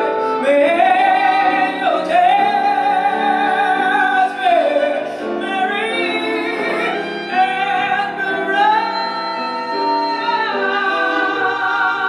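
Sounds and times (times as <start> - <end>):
woman singing with vibrato: 0.0 - 12.0
jazz band playing: 4.7 - 12.0.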